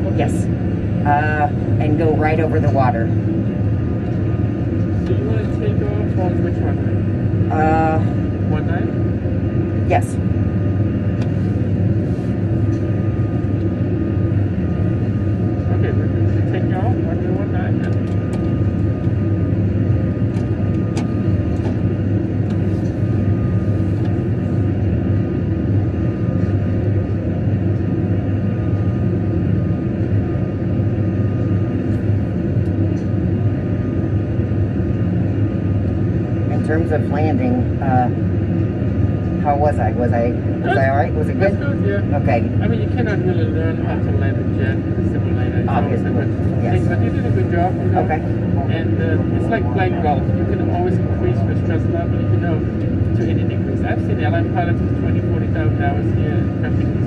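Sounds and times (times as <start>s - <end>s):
jet engine rumble: 0.0s - 57.0s
thin steady whine: 0.0s - 57.0s.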